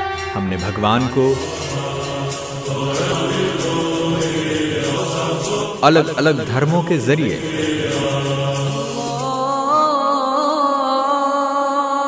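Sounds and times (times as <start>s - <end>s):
background music: 0.0s - 12.0s
voices chanting long notes: 0.0s - 12.0s.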